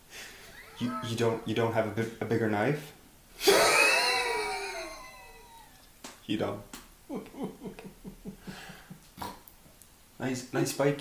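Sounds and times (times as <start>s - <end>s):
breathy vocal cry: 0.5s - 1.5s, 3.4s - 5.8s.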